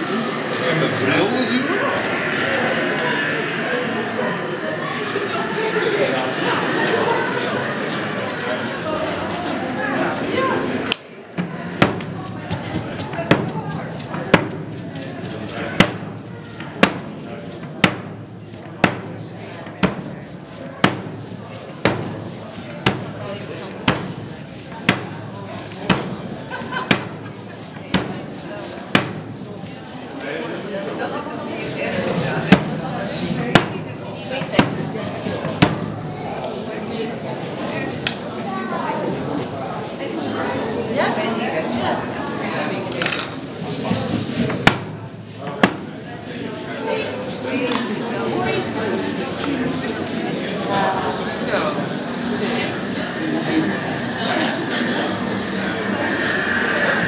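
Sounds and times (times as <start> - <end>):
murmur of voices: 0.0 - 57.0.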